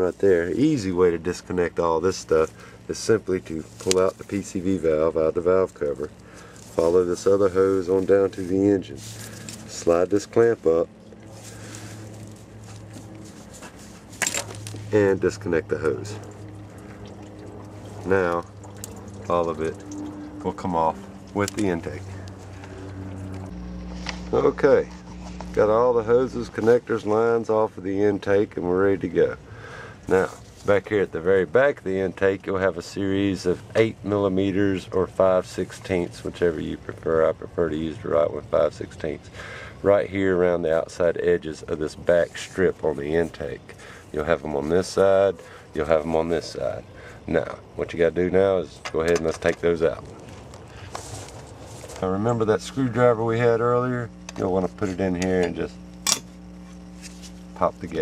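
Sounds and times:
steady low hum: 0:00.0 - 0:58.0.

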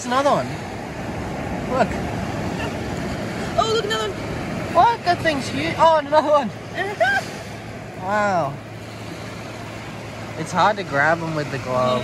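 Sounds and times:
surf: 0:00.0 - 0:12.0
wind: 0:00.0 - 0:12.0.

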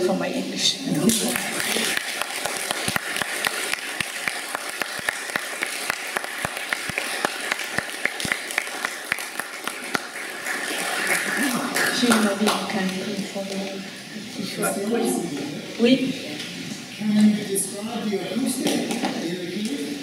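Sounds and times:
audience applauding: 0:01.1 - 0:13.1.

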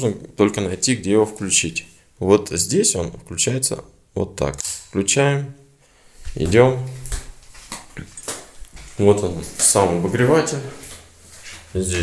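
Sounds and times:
footsteps on hard floor: 0:06.2 - 0:12.0.

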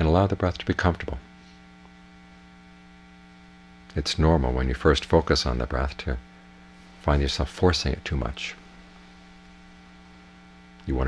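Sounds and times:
electrical mains hum: 0:00.0 - 0:11.0
person speaking: 0:06.9 - 0:08.7.

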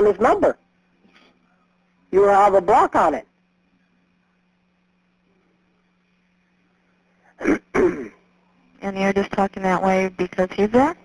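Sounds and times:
low phone line hum: 0:00.0 - 0:11.0
person clearing throat: 0:07.4 - 0:08.3.

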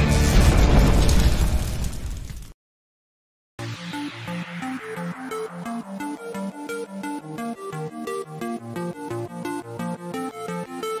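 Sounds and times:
deep explosion blast: 0:00.0 - 0:02.4.

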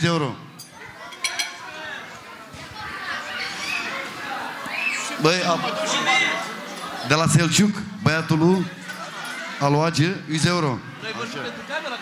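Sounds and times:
crowd chatter: 0:00.0 - 0:12.0
children's voices: 0:00.7 - 0:07.1.

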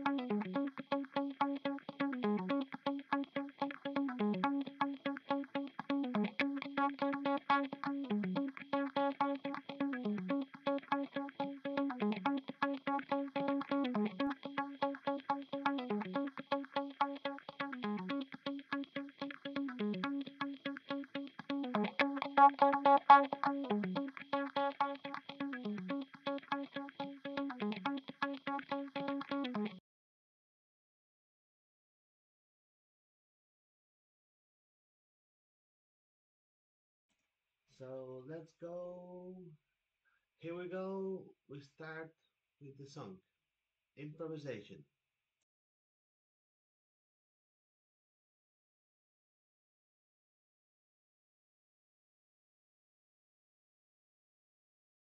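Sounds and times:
electric guitar loop: 0:00.0 - 0:29.8.

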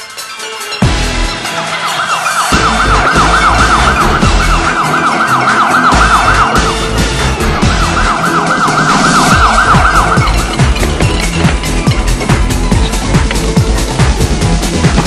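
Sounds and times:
electronic music with heavy beat: 0:00.0 - 0:15.0
yelp siren wailing: 0:01.2 - 0:12.2.

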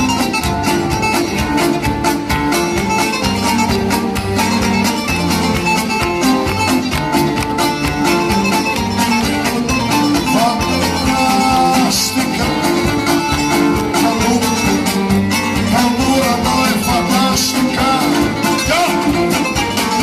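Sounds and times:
bowed string melody: 0:00.0 - 0:20.0
lute strumming fast rhythm: 0:00.0 - 0:20.0
steady bass line: 0:00.0 - 0:20.0.

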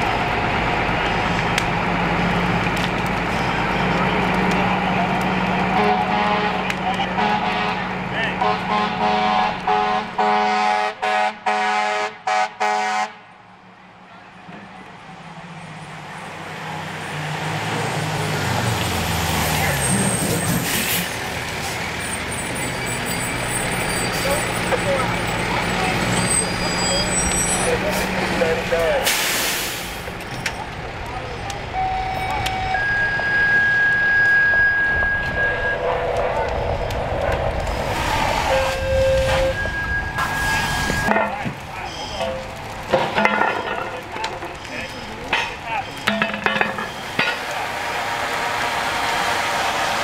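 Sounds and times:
fire engine slowing: 0:00.0 - 0:10.8, 0:13.4 - 0:50.0
air brakes hissing: 0:20.1 - 0:22.6, 0:29.0 - 0:30.2, 0:37.8 - 0:41.1.

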